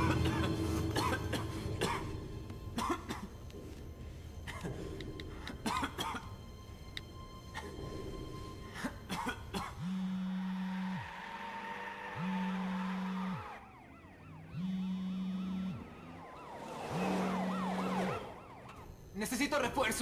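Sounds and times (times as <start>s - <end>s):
eerie music with sliding tones: 0.0s - 20.0s.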